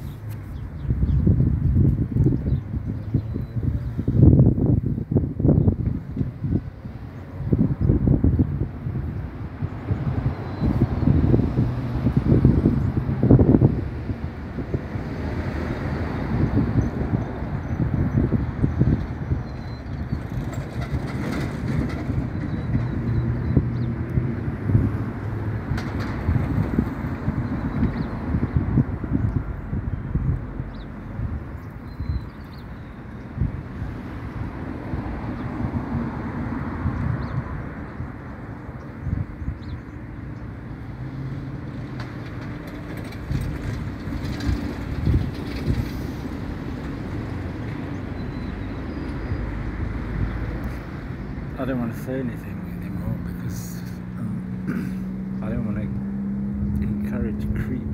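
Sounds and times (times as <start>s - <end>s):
vehicle rumble: 0.0s - 57.9s
wind buffeting microphone: 0.0s - 57.9s.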